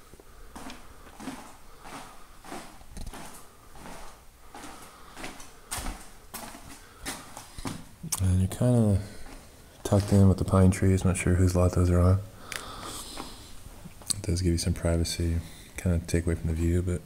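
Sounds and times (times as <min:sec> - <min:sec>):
footsteps on hard floor: 0:00.2 - 0:11.2, 0:13.1 - 0:14.0.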